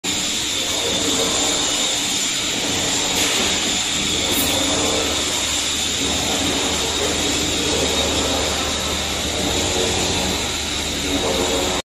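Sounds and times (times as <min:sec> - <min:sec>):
machinery high whine: 0:00.0 - 0:11.8
low machinery hum: 0:00.1 - 0:11.8.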